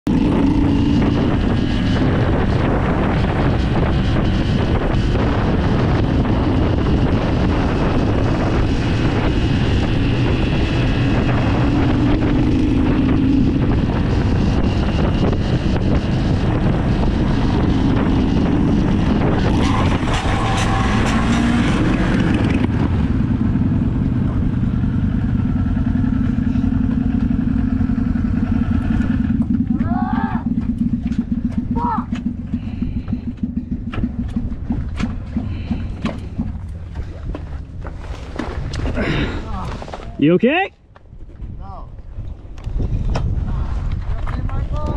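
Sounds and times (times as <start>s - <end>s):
motorcycle engine running: 0.0s - 39.7s
wind rushing over microphone: 0.1s - 44.9s.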